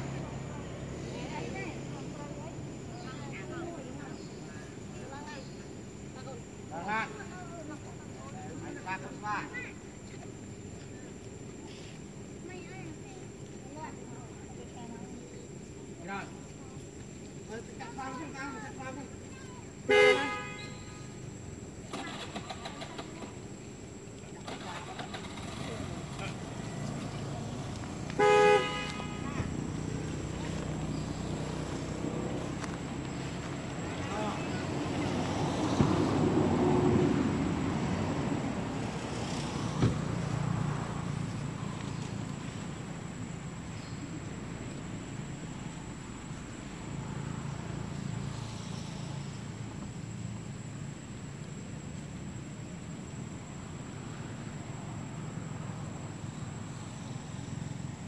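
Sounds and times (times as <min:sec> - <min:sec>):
road traffic: 0:00.0 - 0:58.0
vehicle horn beeping: 0:19.9 - 0:21.1, 0:28.2 - 0:29.6
vehicle passing: 0:24.4 - 0:50.9.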